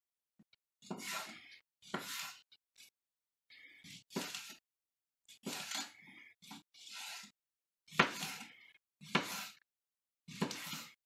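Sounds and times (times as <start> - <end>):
knife slicing onto wooden board: 7.9 - 9.6.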